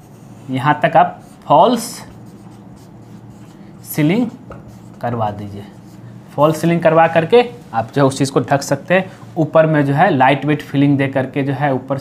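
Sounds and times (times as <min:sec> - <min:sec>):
marker writing on whiteboard: 0:00.0 - 0:08.0.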